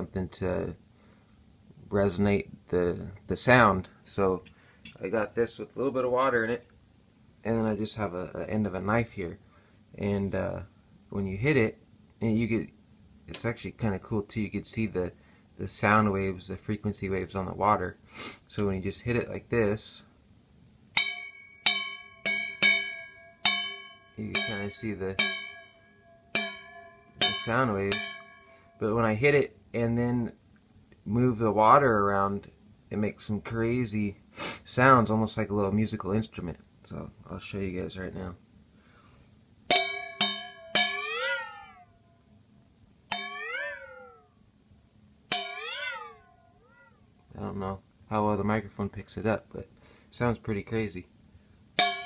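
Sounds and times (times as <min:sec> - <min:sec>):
knife tapping steel bowl: 0:21.0 - 0:28.8, 0:39.7 - 0:41.2, 0:43.1 - 0:43.6, 0:45.3 - 0:45.8, 0:51.8 - 0:52.0
wobbling ringing pitch: 0:21.0 - 0:29.0, 0:39.7 - 0:42.3, 0:43.1 - 0:44.4, 0:45.3 - 0:46.9.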